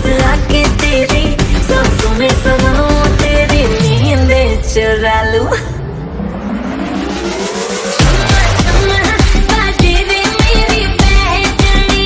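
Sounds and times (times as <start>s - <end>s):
dance song beat: 0.0s - 12.0s
rising sweep with whoosh: 3.8s - 8.9s.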